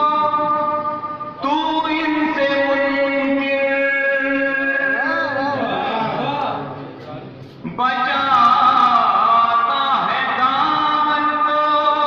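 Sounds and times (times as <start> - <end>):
man singing through loudspeakers: 0.0 - 6.3, 7.6 - 12.0.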